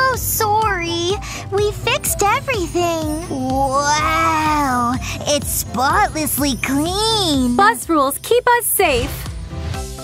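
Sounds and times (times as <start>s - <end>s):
cartoon girl's voice holding vowel: 0.0s - 7.6s.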